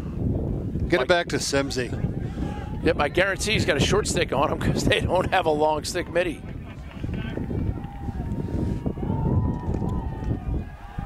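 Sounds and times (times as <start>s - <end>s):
players shouting: 1.6s - 11.0s.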